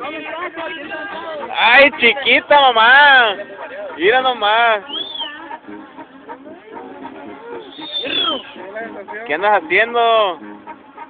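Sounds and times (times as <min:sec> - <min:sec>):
low indistinct voices: 0:00.0 - 0:11.0.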